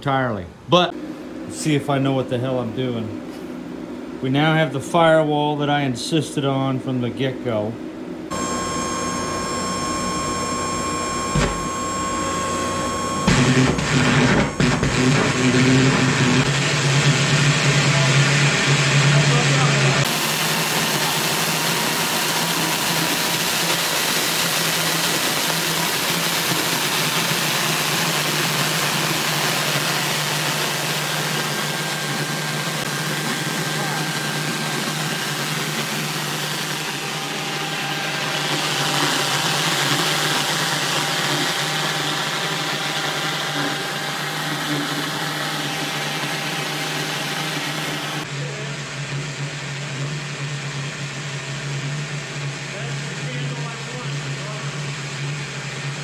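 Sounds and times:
low steady blower hum: 0:00.0 - 0:48.9.

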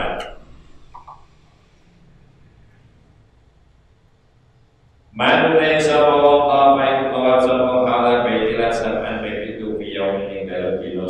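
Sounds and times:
man's voice: 0:00.0 - 0:00.3, 0:05.2 - 0:11.0.

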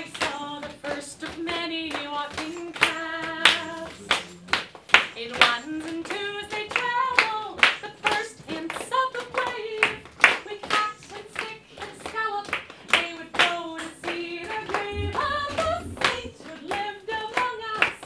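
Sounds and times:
woman singing: 0:00.0 - 0:04.2, 0:04.9 - 0:18.0
people clapping along: 0:00.0 - 0:18.0.

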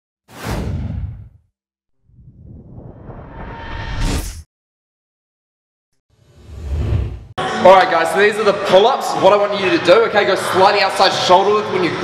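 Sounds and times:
whoosh with deep rumble: 0:02.0 - 0:04.4.

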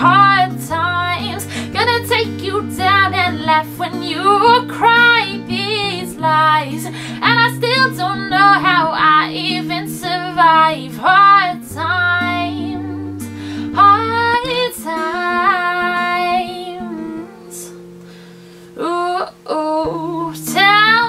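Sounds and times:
woman singing: 0:00.0 - 0:18.0, 0:18.7 - 0:21.0.

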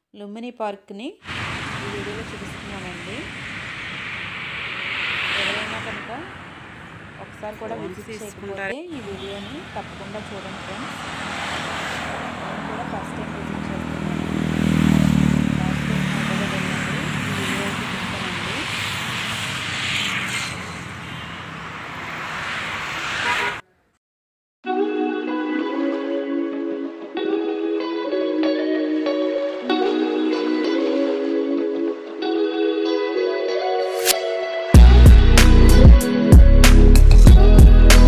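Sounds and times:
steady traffic hiss: 0:01.2 - 0:11.0
vehicle engine passing: 0:01.2 - 0:23.6
road traffic noise: 0:01.2 - 0:23.9, 0:34.8 - 0:38.0.

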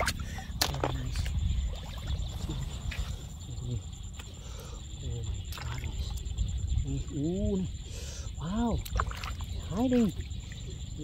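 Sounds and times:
sharp splashes: 0:00.0 - 0:03.1, 0:08.8 - 0:10.2
water splashing and sloshing: 0:00.0 - 0:04.4, 0:05.2 - 0:11.0.

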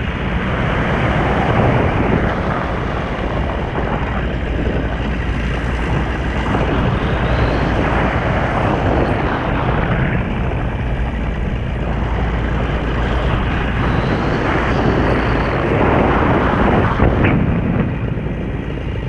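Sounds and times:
paramotor engine and propeller: 0:00.0 - 0:19.0
wind rushing over microphone: 0:00.0 - 0:19.0.

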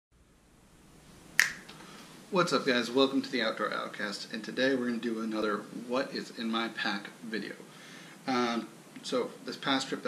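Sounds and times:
faint room noise: 0:00.1 - 0:10.0
finger snap: 0:01.4 - 0:01.8.

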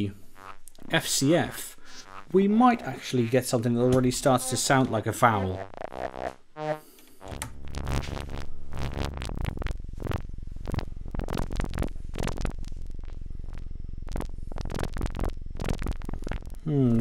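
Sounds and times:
pulsing buzzing synthesizer drone: 0:00.0 - 0:03.5, 0:05.5 - 0:16.6
steady low bass: 0:00.0 - 0:06.3, 0:07.2 - 0:17.0.

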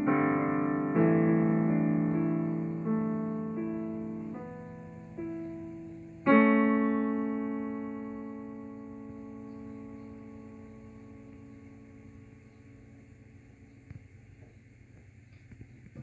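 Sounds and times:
digital piano chord: 0:00.0 - 0:13.8.

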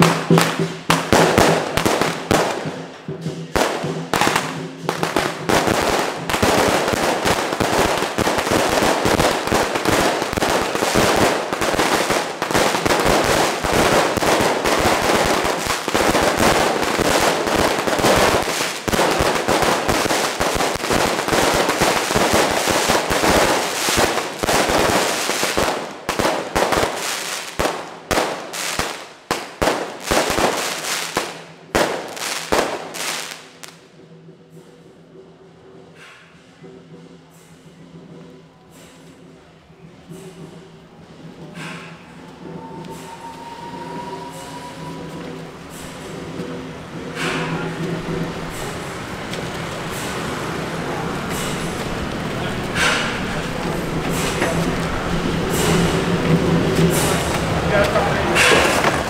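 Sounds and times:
firecrackers crackling and banging: 0:00.0 - 0:59.0.

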